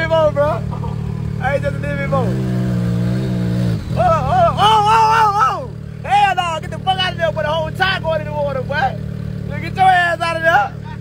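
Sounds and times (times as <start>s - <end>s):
engine droning: 0.0s - 11.0s
people shouting and hollering: 3.9s - 6.9s.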